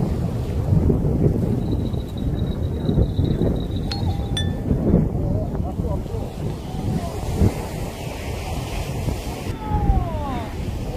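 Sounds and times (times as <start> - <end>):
wind buffeting microphone: 0.0 - 10.9
light metallic clinks: 3.9 - 4.7.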